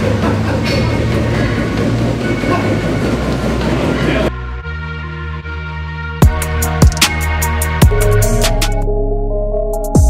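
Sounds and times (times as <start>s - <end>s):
treadmill belt rumbling and clattering: 0.0s - 4.4s.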